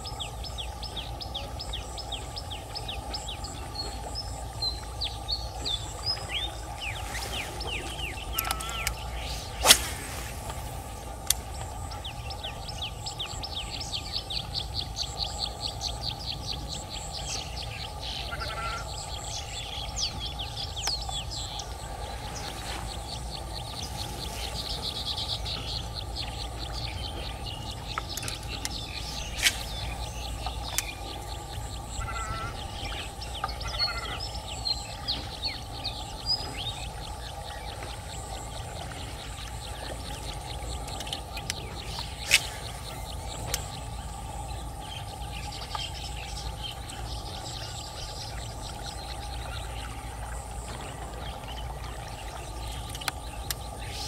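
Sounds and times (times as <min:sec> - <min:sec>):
birds chirping: 0:00.0 - 0:54.0
steady low rumble: 0:00.0 - 0:54.0.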